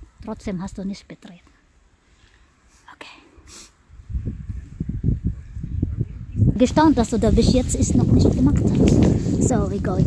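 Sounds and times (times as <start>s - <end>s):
short breathy hiss: 2.1s - 3.8s.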